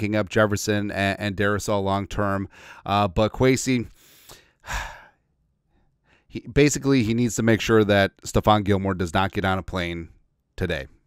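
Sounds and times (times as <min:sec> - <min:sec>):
man drawing quick breath: 0:02.5 - 0:02.9, 0:03.9 - 0:06.3.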